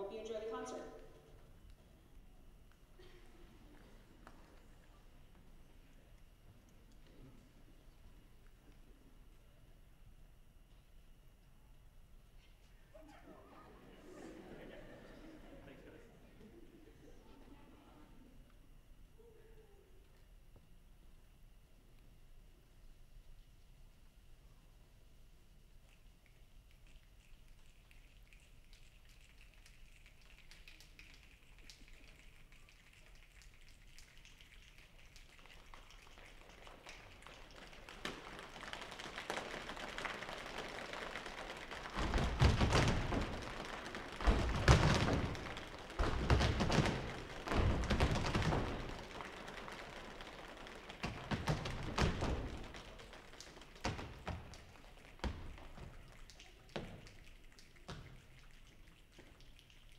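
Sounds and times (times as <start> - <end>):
foot stomps: 38.0 - 56.0
thigh slaps: 38.0 - 56.0.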